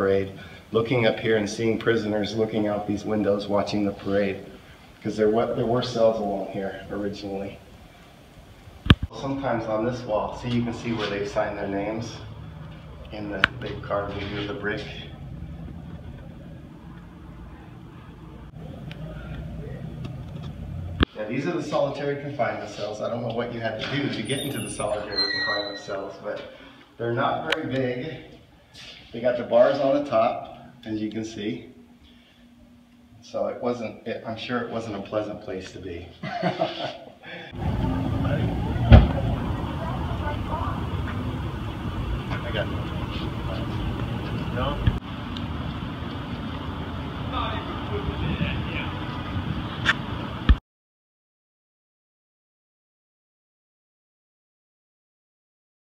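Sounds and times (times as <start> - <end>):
low mechanical hum: 0.0 - 21.2, 27.2 - 50.6
low outdoor rumble: 0.0 - 25.8, 37.6 - 50.6.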